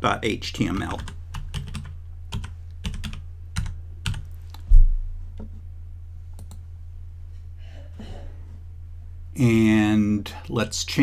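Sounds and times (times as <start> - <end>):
steady low hum: 0.0 - 11.0
computer keyboard typing: 0.7 - 4.6.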